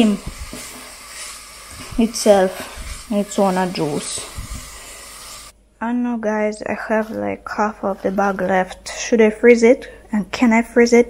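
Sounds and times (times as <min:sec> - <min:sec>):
spatula stirring: 0:00.0 - 0:05.5, 0:06.6 - 0:09.3
vegetables sizzling in a metal pot: 0:00.0 - 0:05.6.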